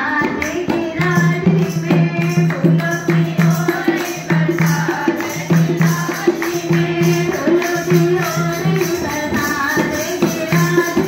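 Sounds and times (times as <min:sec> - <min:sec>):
dholak drum: 0:00.0 - 0:11.0
jingling hand percussion: 0:00.0 - 0:11.0
women's group singing: 0:00.0 - 0:11.0.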